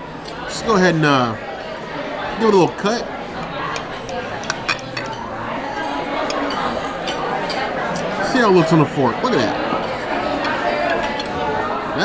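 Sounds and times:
murmur of background chatter: 0.0s - 12.0s
knife and fork scraping a plate: 3.7s - 5.4s, 9.4s - 11.4s.

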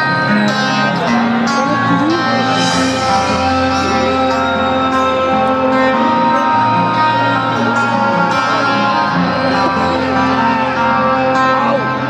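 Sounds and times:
acoustic guitar through pa: 0.0s - 12.0s.

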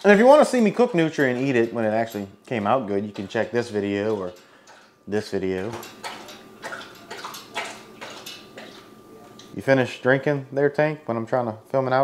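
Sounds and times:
pet lapping water: 0.1s - 2.2s, 5.6s - 9.6s.

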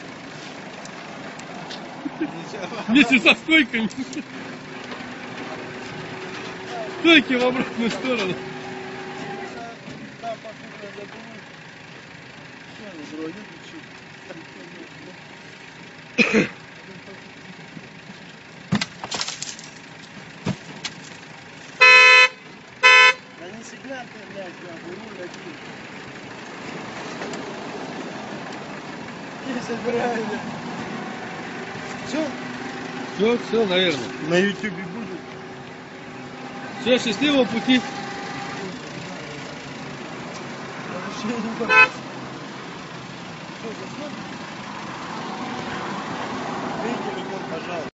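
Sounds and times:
vehicle engine idling: 0.0s - 47.9s
street noise: 0.0s - 48.0s
car horn honking: 5.6s - 11.0s, 21.7s - 23.7s, 30.9s - 39.7s, 40.9s - 42.1s.

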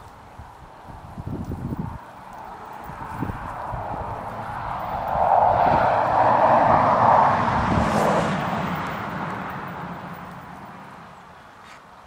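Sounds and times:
engine passing by: 1.6s - 11.4s.

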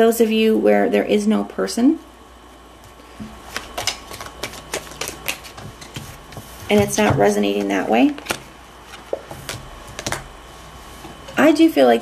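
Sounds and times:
cards being shuffled: 3.2s - 10.3s.

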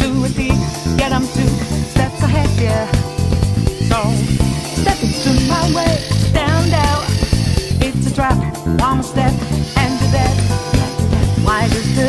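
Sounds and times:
song with steady beat and bass: 0.0s - 12.0s.

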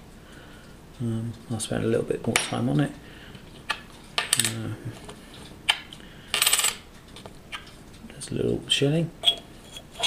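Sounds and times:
coin clinking on hard surface: 6.3s - 6.8s.

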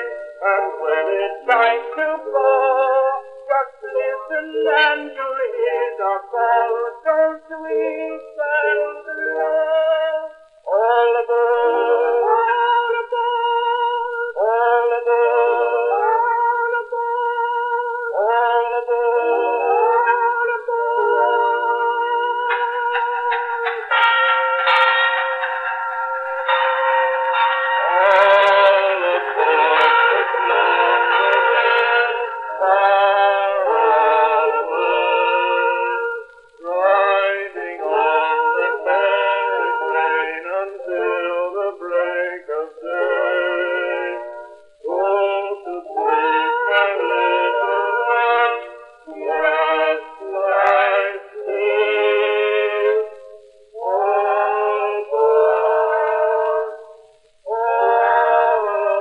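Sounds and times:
men singing a duet: 0.0s - 59.0s.

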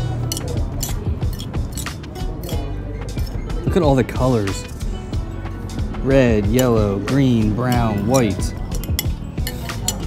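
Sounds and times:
cutlery clinking on ceramic plate: 0.0s - 3.4s, 7.6s - 10.0s
background music: 0.0s - 10.0s.

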